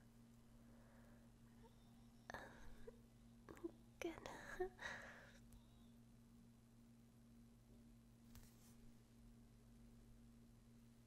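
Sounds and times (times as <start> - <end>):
faint steady hum: 0.0 - 11.0
woman whispering: 2.2 - 4.9.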